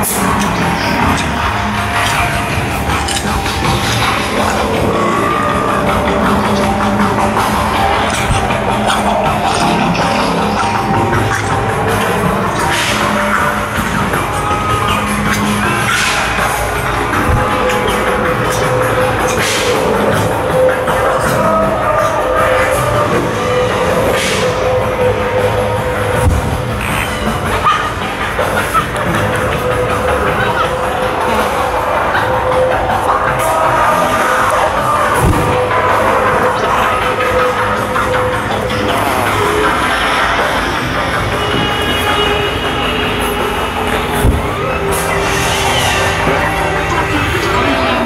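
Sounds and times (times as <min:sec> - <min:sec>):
faint voices: 0:00.0 - 0:48.0
music with long-held tone: 0:00.0 - 0:48.0.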